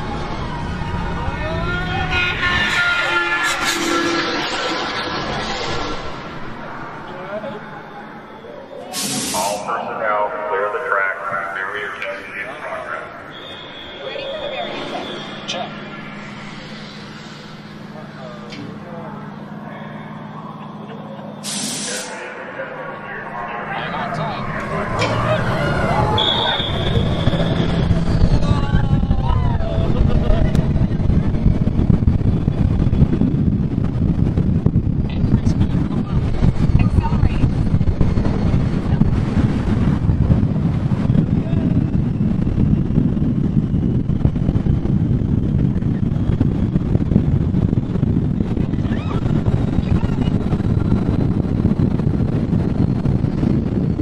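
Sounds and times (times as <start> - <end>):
wind and road roar: 0.0 - 54.0
short hiss: 8.9 - 9.6, 21.4 - 22.1.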